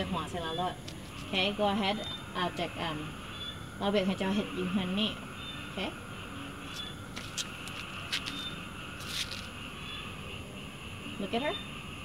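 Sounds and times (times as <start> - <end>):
night insects chirring: 0.0 - 12.0.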